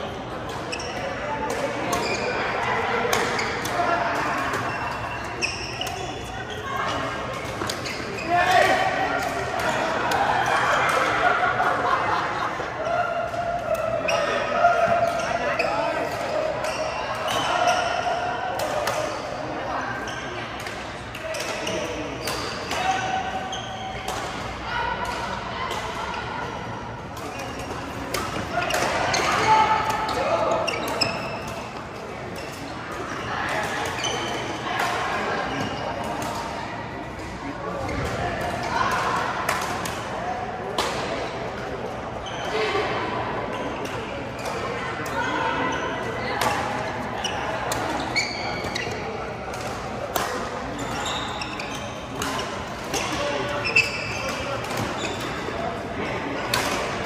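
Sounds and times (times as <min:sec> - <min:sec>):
people chattering in a hall: 0:00.0 - 0:57.0.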